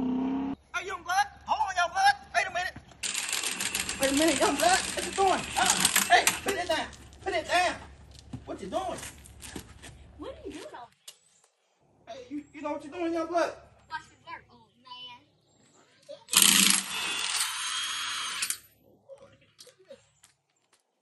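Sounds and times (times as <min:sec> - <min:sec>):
impact wrench rattling: 0:03.0 - 0:06.7, 0:16.4 - 0:17.5
person speaking: 0:03.8 - 0:09.1.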